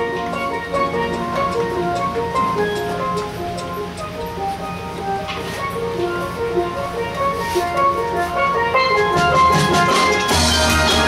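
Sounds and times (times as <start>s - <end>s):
low accompaniment: 0.0s - 11.0s
steel pans playing melody: 0.0s - 11.0s.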